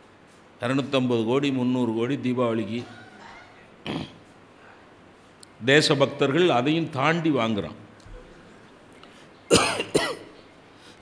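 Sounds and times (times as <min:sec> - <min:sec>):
man coughing: 0:09.5 - 0:10.3.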